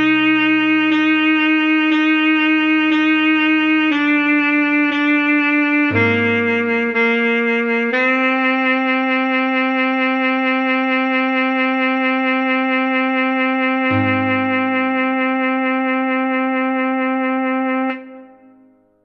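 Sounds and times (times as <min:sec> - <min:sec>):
low accompaniment note: 0:00.0 - 0:02.1, 0:05.9 - 0:07.8, 0:13.9 - 0:16.8
alto saxophone slow melody: 0:00.0 - 0:19.0.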